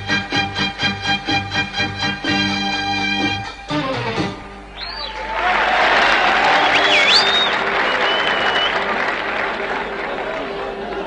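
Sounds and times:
music: 0.0s - 4.9s
shrill whistles: 4.7s - 5.3s, 6.3s - 9.0s
audience applauding: 4.8s - 11.0s.

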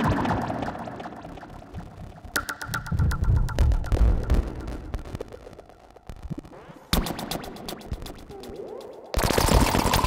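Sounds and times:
synthesizer blips: 0.0s - 6.3s.

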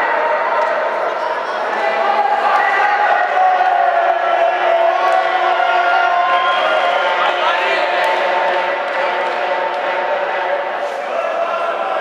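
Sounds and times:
crowd shouting: 0.0s - 12.0s.

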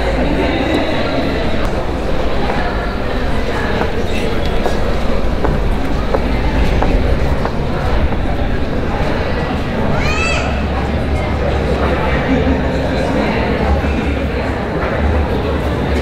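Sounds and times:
loud low rumble: 0.0s - 14.5s
indistinct voices: 0.0s - 16.0s.

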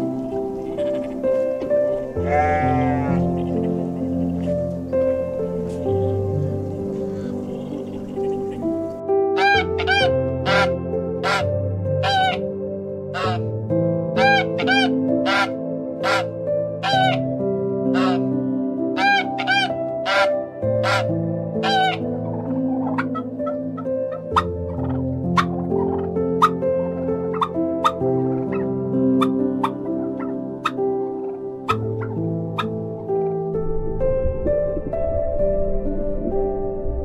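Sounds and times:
background music: 0.0s - 37.0s
duck quacking: 9.4s - 11.4s, 12.0s - 12.4s, 13.2s - 13.4s, 14.2s - 17.2s, 18.0s - 18.2s, 19.0s - 22.0s
turkeys calling and clicking: 9.4s - 11.4s, 12.0s - 12.4s, 13.2s - 13.4s, 14.2s - 17.2s, 18.0s - 18.2s, 19.0s - 26.6s, 27.3s - 28.6s, 29.2s - 32.8s.

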